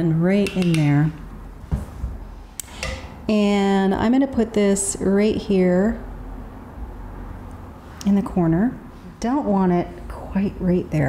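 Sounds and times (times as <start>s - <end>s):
makeup tools handled: 0.4s - 1.0s.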